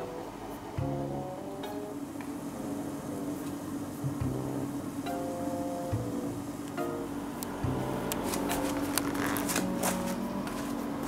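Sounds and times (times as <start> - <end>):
soft plucked background music: 0.0 - 11.0
rustling with sharp clicks: 8.1 - 10.8.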